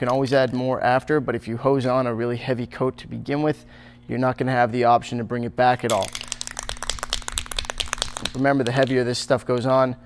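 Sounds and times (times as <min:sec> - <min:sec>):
spray paint can rattling: 0:05.9 - 0:09.0.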